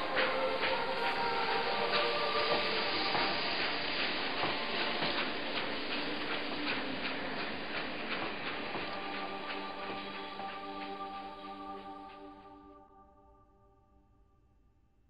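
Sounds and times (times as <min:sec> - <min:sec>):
steam hissing: 0:00.0 - 0:12.6
train rumble: 0:00.0 - 0:12.9.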